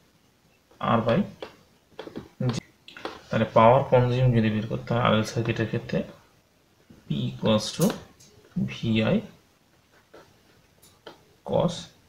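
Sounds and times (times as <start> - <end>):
marker pen writing on whiteboard: 9.7 - 11.4.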